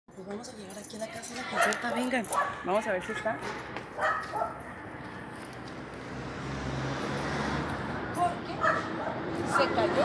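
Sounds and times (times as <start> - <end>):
outdoor background noise: 0.1 - 10.0
dog barking: 1.5 - 3.4, 4.0 - 4.7, 8.6 - 9.8.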